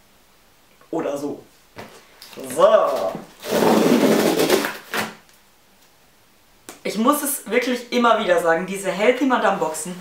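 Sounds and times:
cardboard box rustling and scraping: 0:03.4 - 0:05.0.

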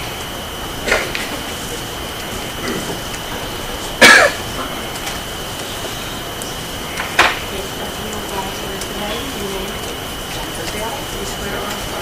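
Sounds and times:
microphone hiss: 0:00.0 - 0:12.0
person coughing: 0:04.0 - 0:04.8.

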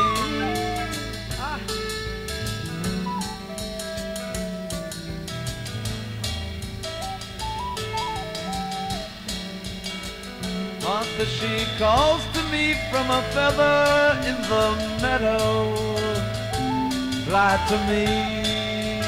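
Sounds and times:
bass guitar: 0:00.0 - 0:19.0
drum kit: 0:00.0 - 0:19.0
lead melody line: 0:00.0 - 0:19.0.

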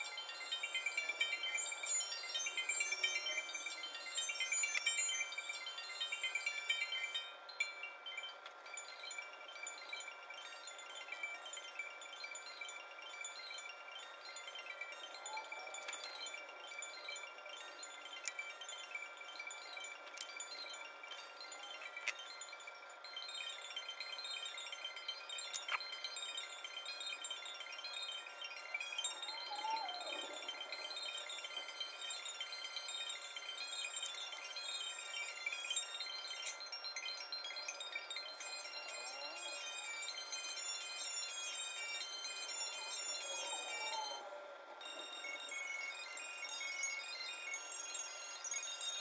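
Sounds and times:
wavering falling tone: 0:00.0 - 0:08.2, 0:08.9 - 0:49.0
tinkling chime-like music: 0:00.0 - 0:49.0.

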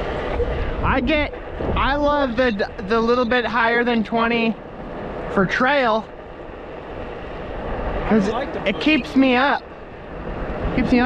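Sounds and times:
wind on microphone: 0:00.0 - 0:05.4, 0:06.0 - 0:11.0.

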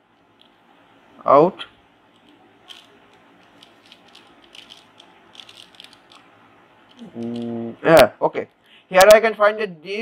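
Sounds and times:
plastic puzzle cube clicking: 0:03.5 - 0:06.2.

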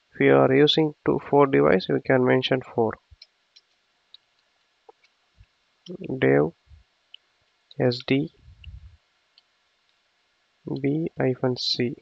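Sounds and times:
man speaking: 0:00.2 - 0:03.0, 0:05.9 - 0:06.6, 0:07.8 - 0:08.4, 0:10.7 - 0:12.0
low muffled rumble: 0:07.9 - 0:09.0.

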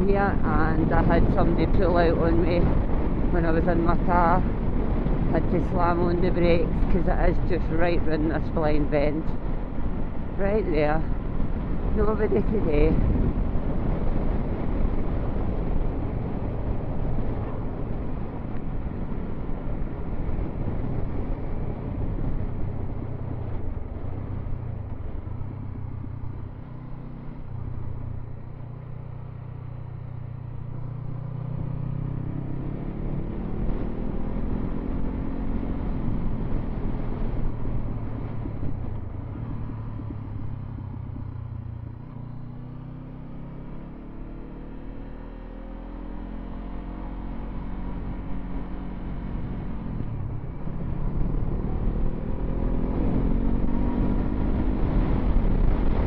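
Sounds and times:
wind on microphone: 0:00.0 - 0:28.3, 0:30.7 - 0:43.4, 0:45.4 - 0:56.0
motorcycle engine: 0:00.0 - 0:56.0.

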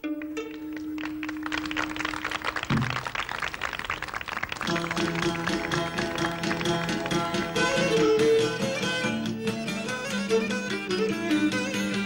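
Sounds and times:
bowed melody: 0:00.0 - 0:03.0, 0:04.6 - 0:12.0
fast plucked strumming: 0:00.0 - 0:03.7, 0:04.6 - 0:12.0.

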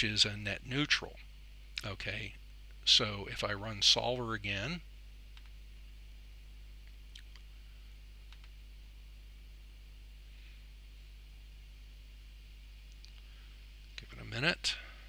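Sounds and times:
low electrical hum: 0:00.0 - 0:15.0
faint mouse clicks: 0:05.3 - 0:05.6, 0:08.3 - 0:08.6, 0:12.9 - 0:14.1.

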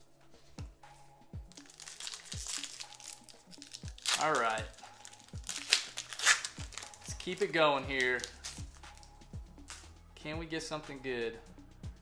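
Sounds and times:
background music with steady beat: 0:00.0 - 0:12.0
foil wrapper crinkling: 0:01.5 - 0:08.7.

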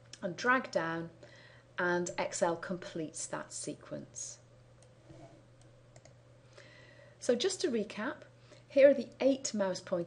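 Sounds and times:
low steady hum: 0:00.0 - 0:10.0
computer mouse clicks: 0:04.8 - 0:06.2.

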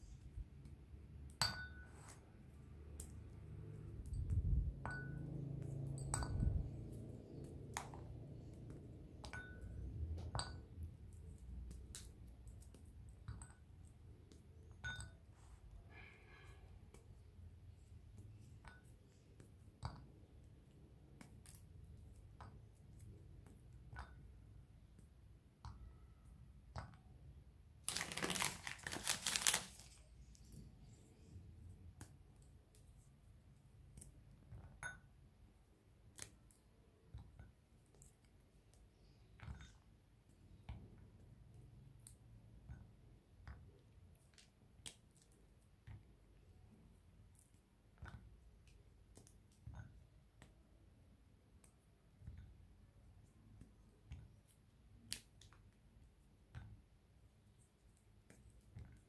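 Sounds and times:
chocolate clinking into ceramic bowl: 0:01.3 - 0:02.1
wrapper crinkling loudly: 0:27.8 - 0:30.1.

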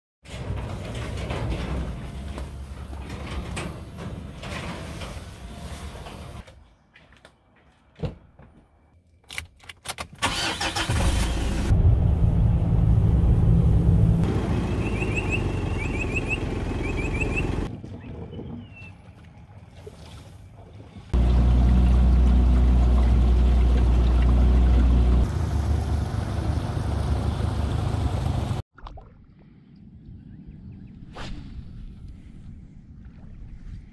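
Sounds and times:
car engine starting and running: 0:10.2 - 0:17.7, 0:21.1 - 0:28.6.

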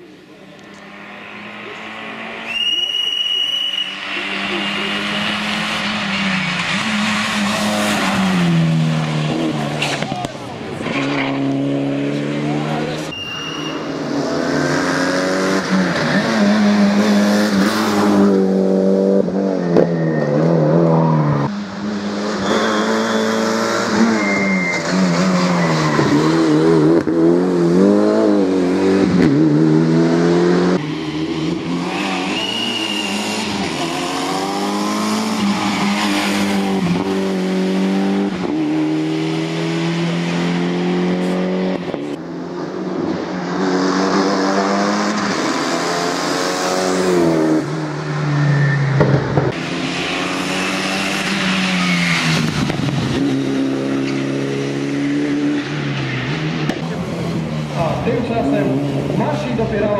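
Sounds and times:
car engine revving: 0:00.6 - 0:59.9.

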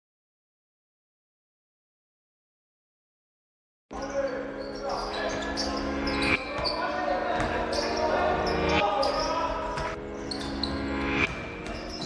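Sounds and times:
short high squeaks: 0:04.0 - 0:07.1, 0:10.2 - 0:12.0
basketball bouncing: 0:11.3 - 0:12.0.

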